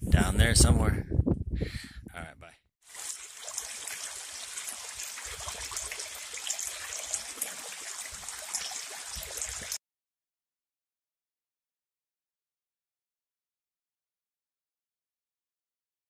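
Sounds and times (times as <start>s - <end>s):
water splashing over boulders: 2.9s - 9.8s.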